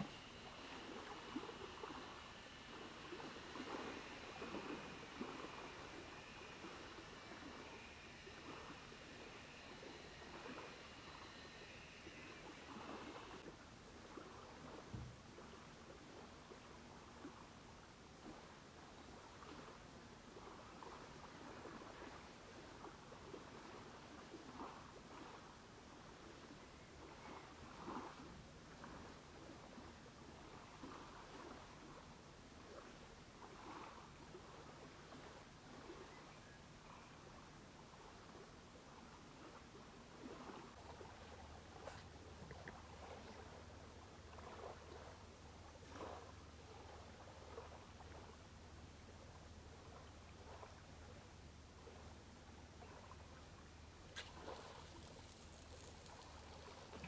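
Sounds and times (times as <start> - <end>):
background hiss: 0.0 - 13.4, 40.7 - 57.0
soft water splashes: 0.0 - 13.4, 40.2 - 57.0
river water lapping at shore: 0.0 - 14.8, 19.1 - 36.1, 37.2 - 57.0.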